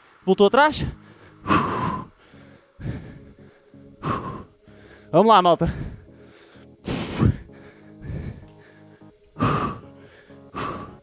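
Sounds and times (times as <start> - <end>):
man breathing hard: 0.8 - 11.0.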